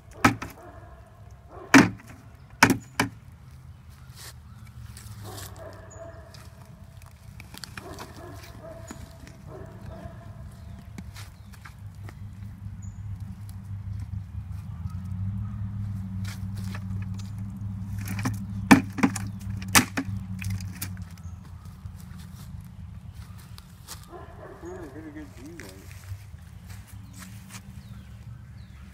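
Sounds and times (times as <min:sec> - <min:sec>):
sharp knocks: 0:00.2 - 0:00.6, 0:01.8 - 0:03.2, 0:18.0 - 0:20.8.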